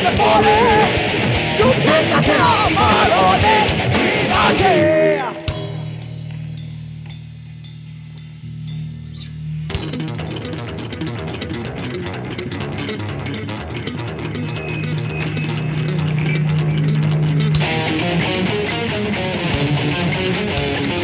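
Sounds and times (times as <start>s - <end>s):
rock band playing: 0.0s - 21.0s
held low bass note: 13.9s - 18.6s.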